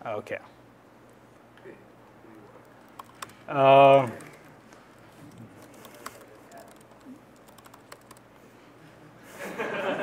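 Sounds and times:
keyboard key clicks: 2.7s - 3.4s, 5.3s - 8.2s.

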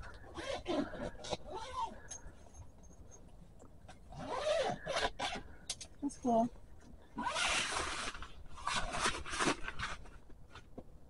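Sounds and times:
zipper being pulled open: 0.3s - 2.0s, 4.1s - 5.4s, 7.2s - 10.2s.

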